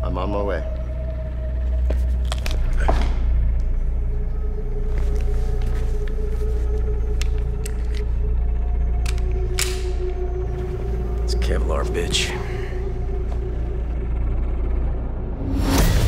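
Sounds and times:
low rumbling drone: 0.0s - 16.0s.

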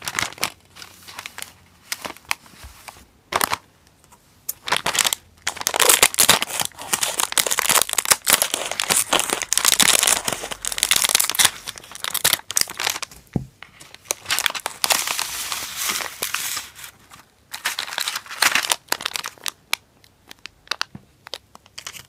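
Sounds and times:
plastic wrapper crinkling: 0.0s - 3.7s, 4.5s - 22.0s.

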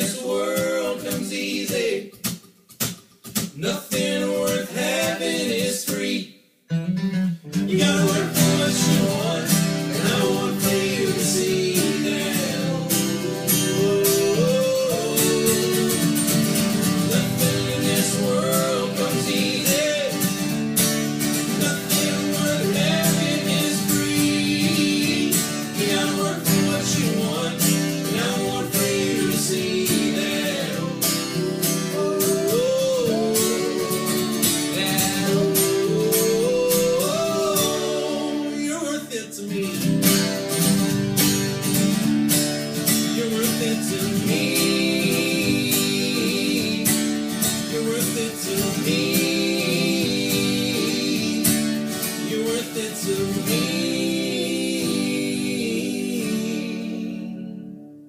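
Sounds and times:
men singing together: 0.0s - 2.2s, 3.6s - 6.3s, 7.7s - 40.1s, 43.0s - 57.6s
acoustic guitars strummed: 0.0s - 58.0s.

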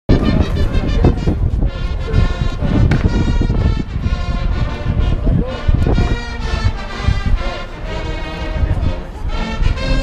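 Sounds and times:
brass fanfare chords: 0.1s - 10.0s
wind buffeting microphone: 0.1s - 10.0s.

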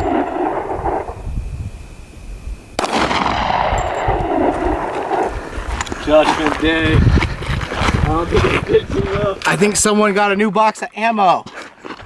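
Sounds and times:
wind rumbling on microphone: 0.0s - 9.9s
man speaking: 8.1s - 11.5s.

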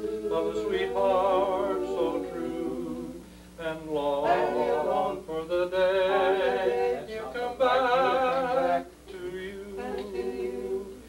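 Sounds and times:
male quartet singing a cappella: 0.0s - 11.0s.

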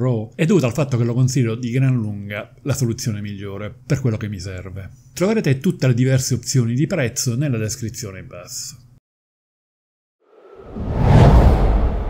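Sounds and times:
whoosh transition effect: 10.3s - 12.0s
deep low rumble: 10.5s - 12.0s.

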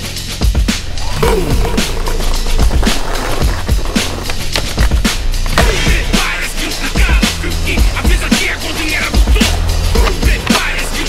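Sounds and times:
music track: 0.0s - 11.0s
skateboard wheels rolling on stone: 0.7s - 11.0s
skateboard clacking on concrete: 1.9s - 6.0s, 8.0s - 11.0s.

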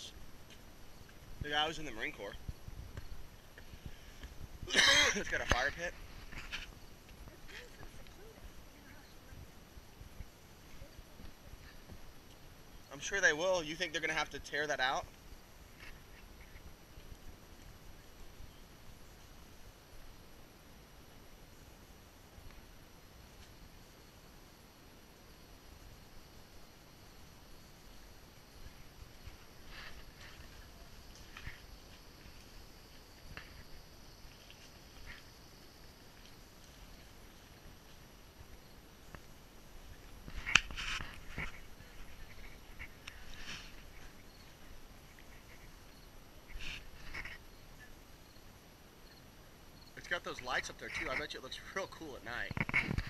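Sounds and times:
faint outdoor background: 0.0s - 53.0s.

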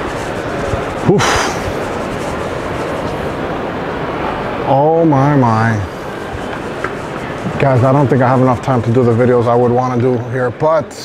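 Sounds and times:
crowd murmur in large hall: 0.0s - 11.0s.

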